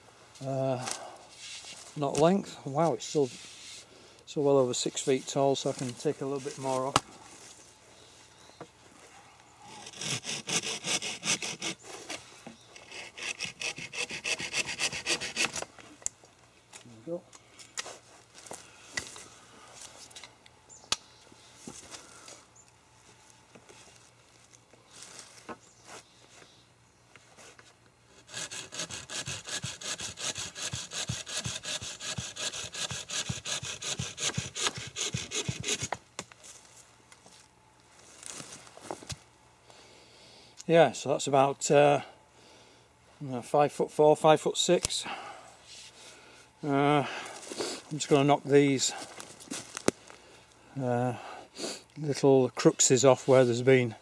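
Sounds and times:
saw cutting wood: 0:09.7 - 0:11.8, 0:12.8 - 0:15.6, 0:28.2 - 0:36.0.

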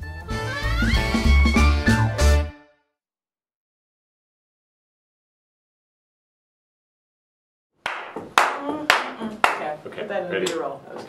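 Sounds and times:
hand claps: 0:07.8 - 0:09.7.

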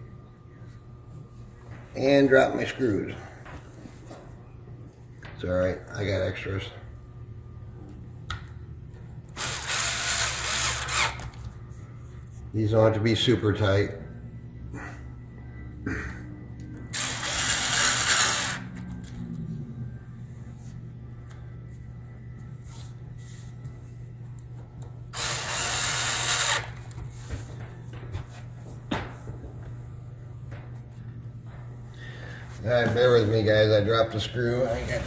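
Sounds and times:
steady low hum: 0:00.0 - 0:35.0.

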